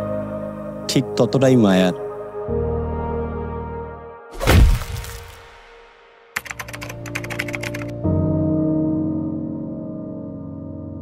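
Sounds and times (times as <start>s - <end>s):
heavy boom: 4.4s - 5.6s
keyboard typing clicks: 6.4s - 7.9s.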